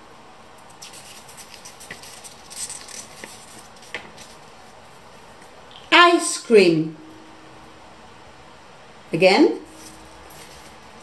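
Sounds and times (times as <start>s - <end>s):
faint room noise: 0.0s - 11.0s
paper cards rustling: 0.6s - 5.5s, 9.7s - 11.0s.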